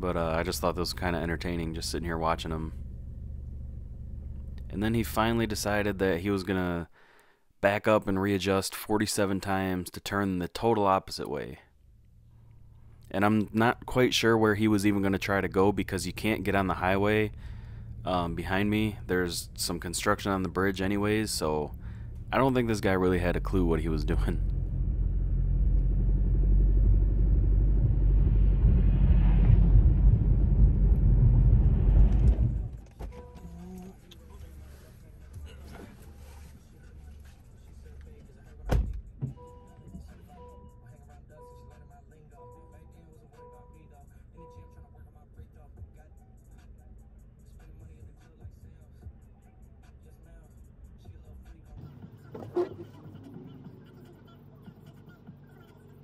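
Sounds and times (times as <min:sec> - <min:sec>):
car engine and tyre rumble: 0:00.4 - 0:05.9, 0:13.6 - 0:33.4.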